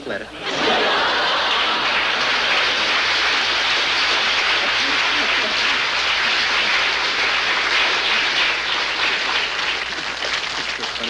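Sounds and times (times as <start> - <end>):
audience applauding: 0.4 - 11.0
audience laughing: 0.4 - 11.0.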